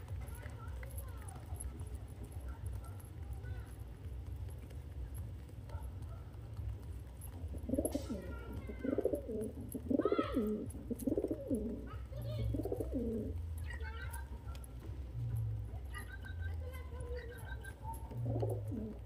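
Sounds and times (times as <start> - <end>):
pigeons cooing: 6.8 - 13.5, 16.0 - 19.0.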